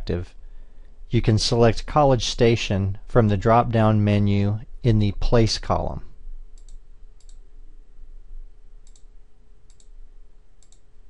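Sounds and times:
faint steady hum: 0.0s - 11.0s
computer mouse clicking: 6.6s - 7.4s, 8.8s - 9.1s, 9.7s - 10.0s, 10.6s - 10.9s.

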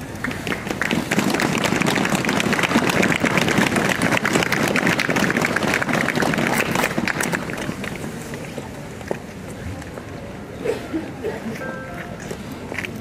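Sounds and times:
crowd applauding: 0.1s - 7.7s.

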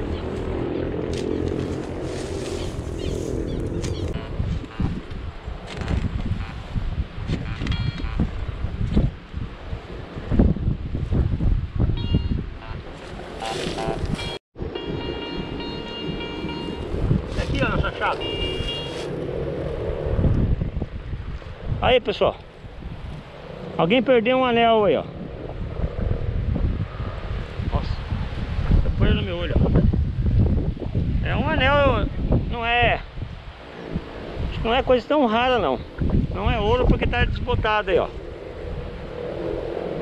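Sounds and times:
wind rumbling on microphone: 0.0s - 40.0s
metal detector beeping: 7.5s - 8.3s, 12.0s - 12.8s, 13.8s - 16.9s, 18.1s - 19.1s.

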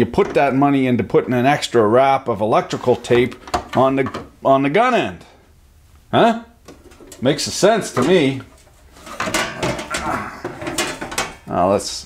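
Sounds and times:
thin metal clanks and scrapes: 7.8s - 11.4s.

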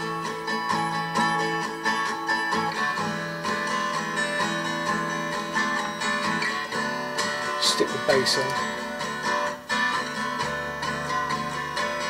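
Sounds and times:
guitar strummed and picked: 0.0s - 12.0s.

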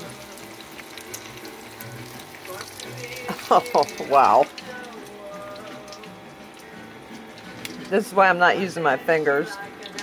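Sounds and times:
food frying in hot oil: 0.0s - 10.0s.

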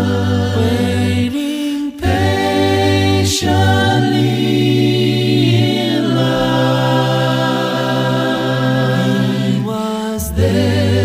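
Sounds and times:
a cappella vocal group singing: 0.0s - 11.0s.

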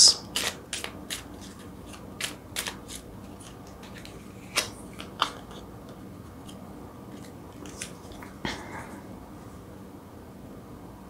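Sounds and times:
cards clicking: 0.4s - 6.6s.

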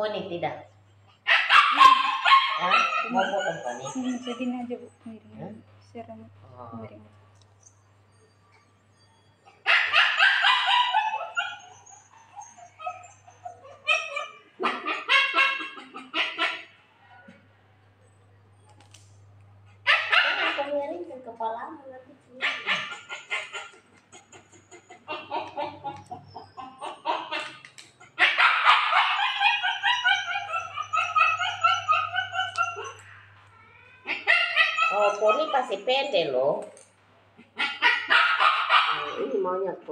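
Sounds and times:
dog barking and yelping: 1.1s - 4.6s, 8.9s - 17.4s, 19.7s - 20.8s, 22.4s - 36.2s, 37.3s - 39.6s
animal calls: 1.1s - 5.6s, 8.9s - 17.4s, 19.7s - 20.9s, 22.3s - 36.6s, 37.3s - 39.6s.

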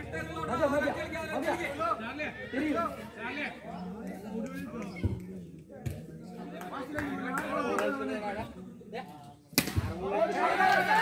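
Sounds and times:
people talking and calling out: 0.0s - 11.0s.

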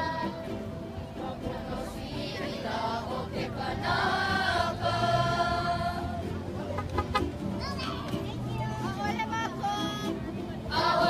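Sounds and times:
children and adults singing: 0.0s - 6.4s, 10.6s - 11.0s.

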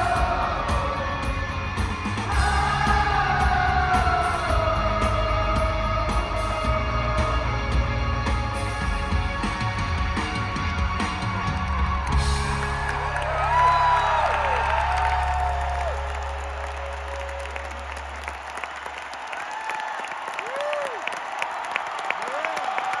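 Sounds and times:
crowd cheering and clapping: 0.0s - 7.2s, 9.0s - 23.0s
rock band sustained low note: 0.0s - 18.8s.

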